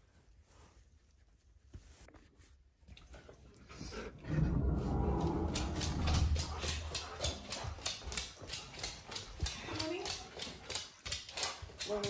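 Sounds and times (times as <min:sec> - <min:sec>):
dog grumbling: 0:04.0 - 0:06.9
dog claws clicking on wooden floor: 0:05.0 - 0:12.0.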